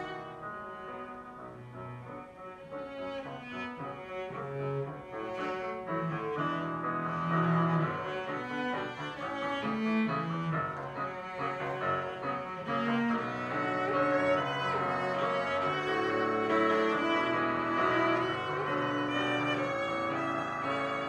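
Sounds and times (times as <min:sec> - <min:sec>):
cello melody: 0:00.0 - 0:21.0
piano accompaniment: 0:00.0 - 0:21.0.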